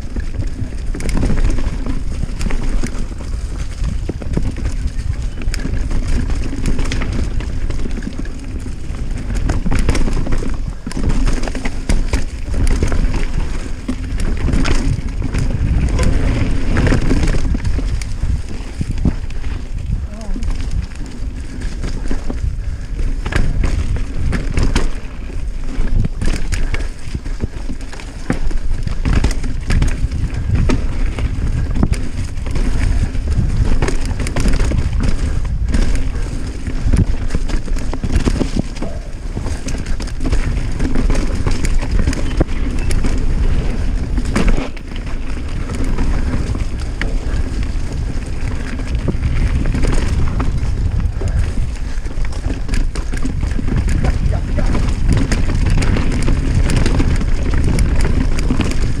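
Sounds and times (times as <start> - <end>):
bike tyres rumbling on dirt: 0.0 - 59.0
wind on microphone: 0.0 - 59.0.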